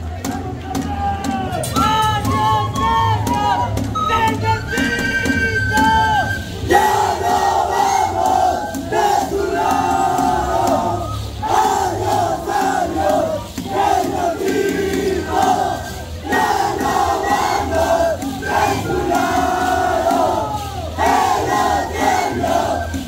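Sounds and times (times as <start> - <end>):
crowd chanting and shouting: 0.0 - 23.0
wind instrument holding notes: 1.7 - 23.0.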